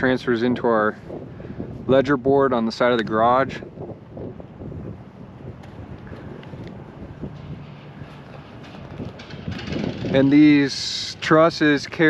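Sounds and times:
wind rumble on microphone: 0.0s - 12.0s.

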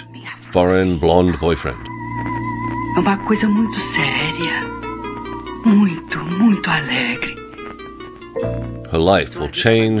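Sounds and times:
woman speaking: 0.0s - 1.4s, 3.0s - 4.8s, 5.6s - 7.4s
soft background music: 0.0s - 10.0s.

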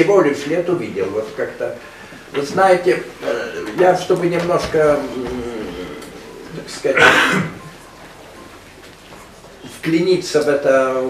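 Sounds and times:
man clearing his throat: 6.9s - 7.7s.

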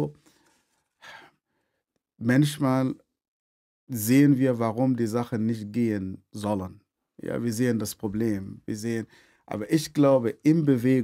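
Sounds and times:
man speaking: 2.2s - 3.0s, 3.9s - 11.0s
man inhaling softly: 9.1s - 9.5s.

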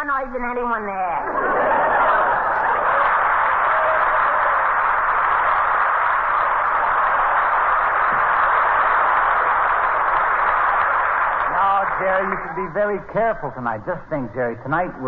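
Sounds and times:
audience applauding: 1.5s - 14.4s.

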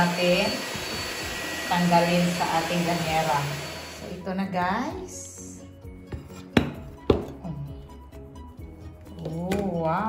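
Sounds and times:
background music: 1.7s - 10.0s.

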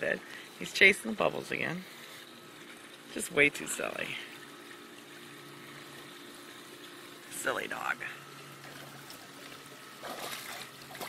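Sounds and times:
faint water noise: 0.0s - 11.0s.

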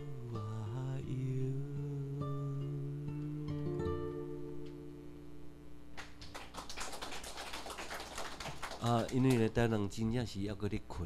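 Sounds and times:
acoustic guitar chord: 0.0s - 6.0s
audience clapping: 6.0s - 9.7s.

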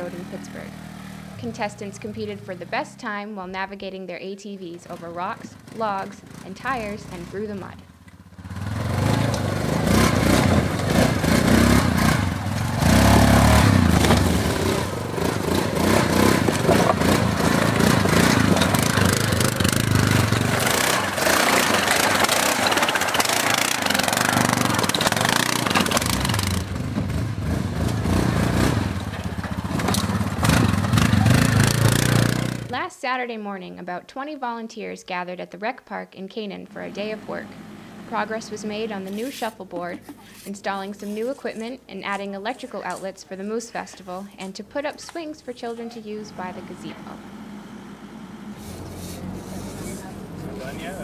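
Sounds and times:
atv engine revving: 0.0s - 32.9s, 36.6s - 51.0s.

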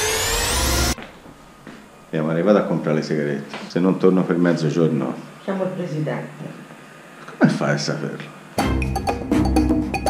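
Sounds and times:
rising whine: 0.0s - 2.1s.

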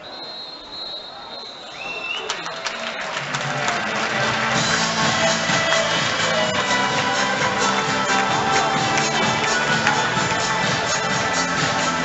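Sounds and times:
stadium crowd chatter: 0.0s - 12.0s
background music with a beat: 3.4s - 12.0s.

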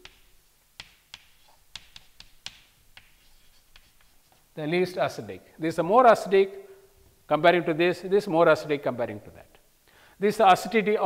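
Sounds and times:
chalk tapping on chalkboard: 0.0s - 4.5s
faint chalk scratches: 0.0s - 4.6s.

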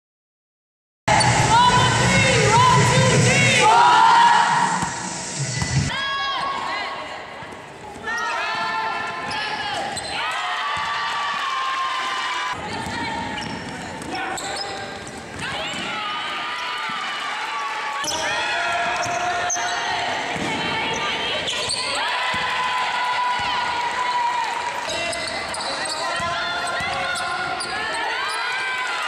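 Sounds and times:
players' voices: 1.1s - 11.0s, 12.5s - 29.0s
sneaker squeaks on court: 12.7s - 15.4s, 24.9s - 28.4s
basketball bouncing: 21.7s - 22.6s.

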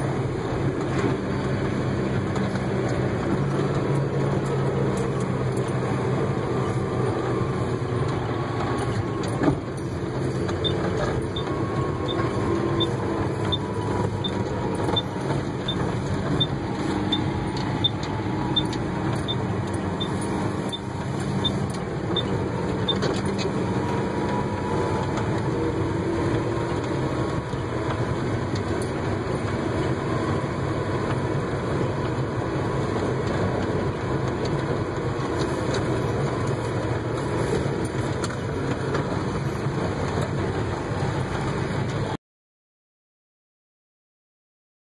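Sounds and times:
tractor diesel engine running: 0.0s - 42.2s
light regular ticking: 7.8s - 30.0s.

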